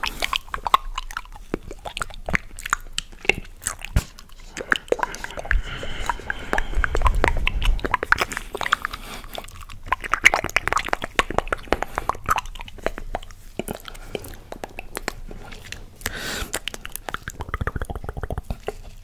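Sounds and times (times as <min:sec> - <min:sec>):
chewing and wet mouth sounds: 0:00.0 - 0:19.0.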